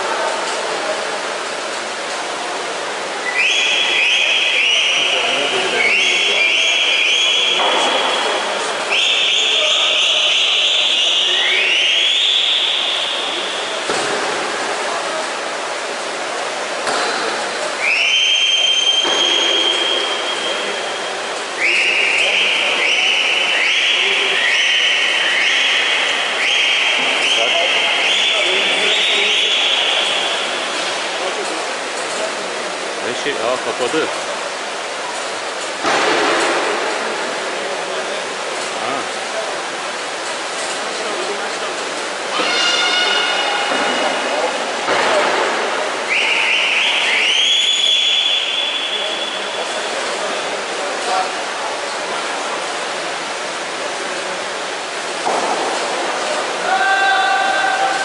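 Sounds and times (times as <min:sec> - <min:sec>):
shrill whistles: 0:03.2 - 0:08.3, 0:08.9 - 0:13.5, 0:17.8 - 0:20.8, 0:21.6 - 0:30.4, 0:46.1 - 0:49.6.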